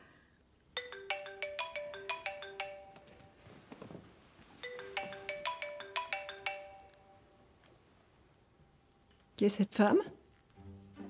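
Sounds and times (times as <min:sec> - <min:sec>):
mobile phone ringtone melody: 0:00.8 - 0:03.4, 0:04.6 - 0:07.4.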